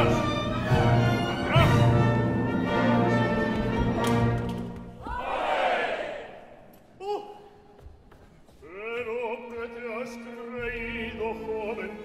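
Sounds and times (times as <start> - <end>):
operatic singing: 8.6 - 12.0.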